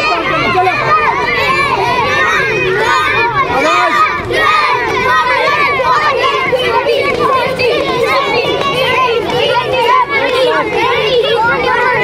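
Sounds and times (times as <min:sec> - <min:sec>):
children shouting: 0:00.0 - 0:12.0.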